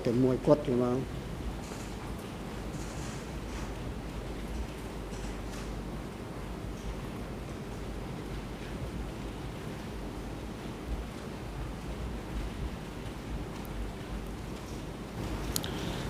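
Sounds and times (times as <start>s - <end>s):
microphone hiss: 0.0s - 16.0s.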